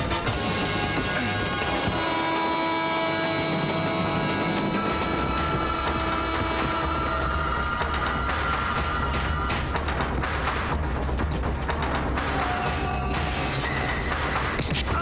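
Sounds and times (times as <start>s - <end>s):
moving train rumble and clatter: 1.8s - 13.4s.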